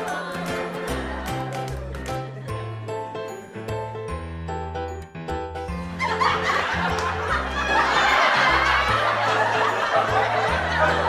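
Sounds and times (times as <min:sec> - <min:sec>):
people laughing: 0:00.0 - 0:02.8, 0:05.9 - 0:11.0.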